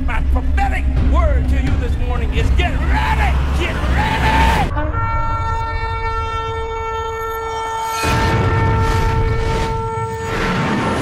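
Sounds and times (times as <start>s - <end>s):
steady horn-like tone: 3.2s - 10.5s.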